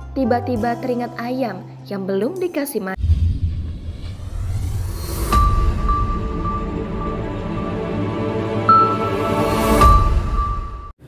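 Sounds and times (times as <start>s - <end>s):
deep rumbling: 3.0s - 8.7s.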